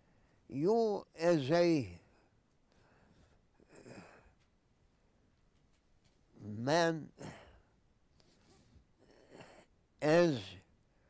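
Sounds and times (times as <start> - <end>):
man speaking: 0.5 - 2.1, 6.4 - 7.5, 10.0 - 10.6
man sighing: 3.6 - 4.4, 7.2 - 7.7.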